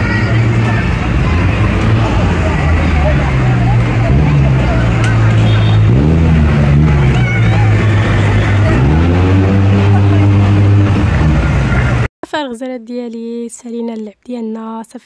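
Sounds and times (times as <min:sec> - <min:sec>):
crowd chatter: 0:00.0 - 0:12.1
low rumble of road traffic: 0:00.0 - 0:12.1.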